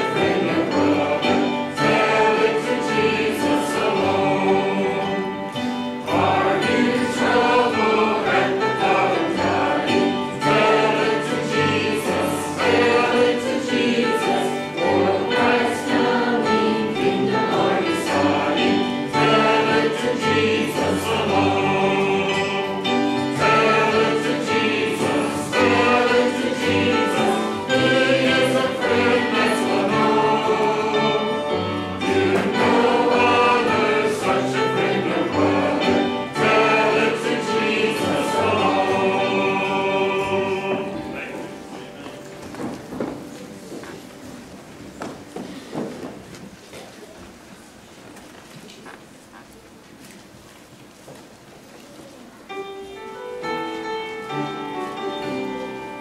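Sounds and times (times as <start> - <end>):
choir and congregation singing hymn: 0.0 - 46.5
instrumental accompaniment: 0.0 - 46.6, 52.3 - 56.0.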